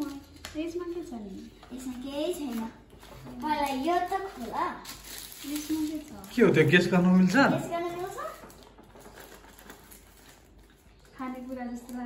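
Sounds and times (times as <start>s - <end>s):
paper-wrapped box rustling: 0.0s - 12.0s.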